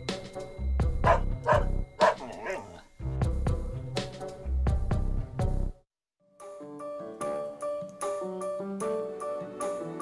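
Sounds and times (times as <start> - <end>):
background music: 0.0 - 10.0
dog barking: 1.0 - 2.8
dog whining: 1.1 - 2.8.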